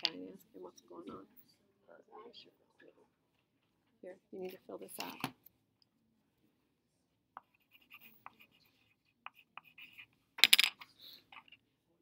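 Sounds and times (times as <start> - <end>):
pen writing on paper: 7.4 - 10.2.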